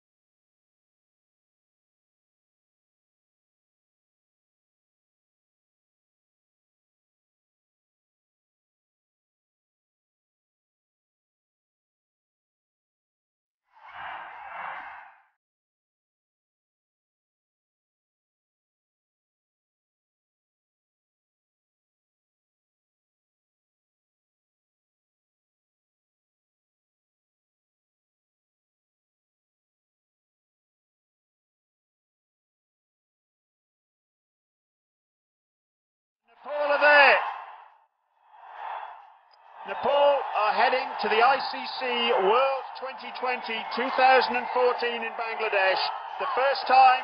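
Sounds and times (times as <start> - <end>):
stadium crowd cheering: 13.7 - 15.4, 36.3 - 47.0.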